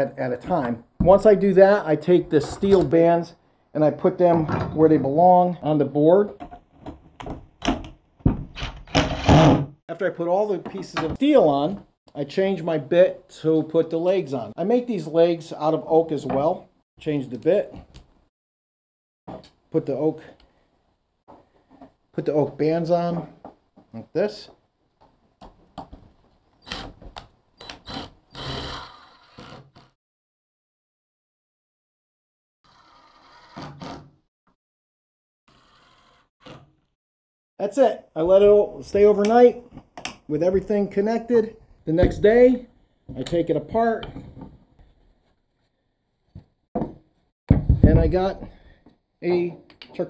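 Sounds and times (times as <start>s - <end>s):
cordless drill driving screws: 27.6s - 29.6s.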